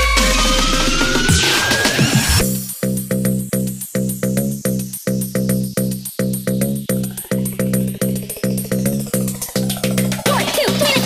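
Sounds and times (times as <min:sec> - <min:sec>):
dance music: 0:00.0 - 0:02.9, 0:06.9 - 0:11.0
fast hi-hats: 0:00.0 - 0:11.0
buzzy bass synth pulsing: 0:02.2 - 0:11.0.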